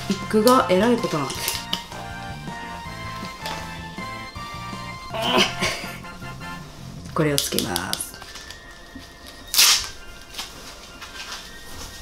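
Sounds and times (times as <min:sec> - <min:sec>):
quiet background music: 0:00.0 - 0:12.0
sharp ripping sound: 0:09.5 - 0:10.0.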